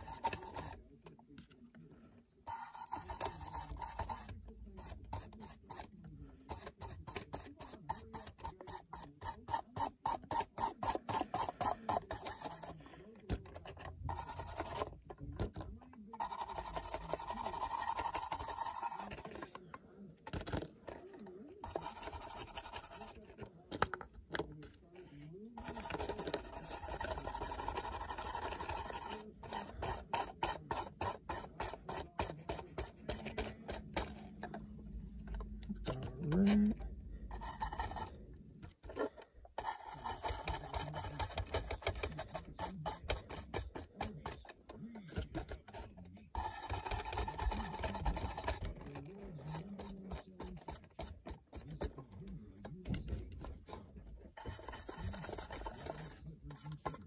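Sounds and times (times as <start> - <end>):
paintbrush scrubbing chalk: 0.0 - 0.8, 2.5 - 12.8, 14.0 - 14.9, 16.2 - 19.4, 21.6 - 23.3, 25.6 - 34.2, 35.7 - 38.2, 39.0 - 44.5, 45.1 - 51.9, 54.4 - 57.0.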